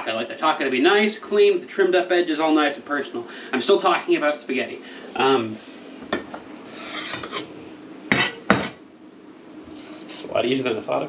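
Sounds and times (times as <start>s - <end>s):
knife scraping ceramic plate: 6.7s - 7.5s, 8.1s - 8.8s.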